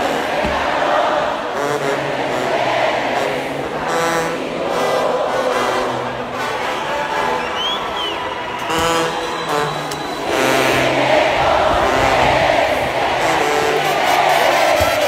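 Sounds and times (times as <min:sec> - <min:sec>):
crowd cheering: 0:00.0 - 0:15.0
live brass band playing: 0:00.9 - 0:07.6, 0:08.6 - 0:15.0.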